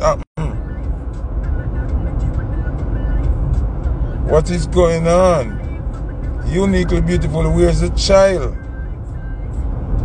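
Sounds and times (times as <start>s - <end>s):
car engine hum: 0.0s - 10.0s
road noise: 0.0s - 10.0s.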